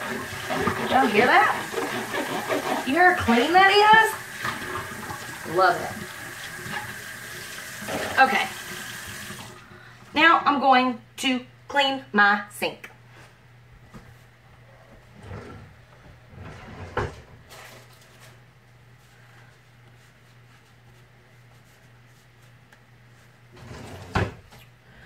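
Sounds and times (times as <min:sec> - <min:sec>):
cupboard doors and drawers closing: 0:15.2 - 0:17.5, 0:23.6 - 0:24.5.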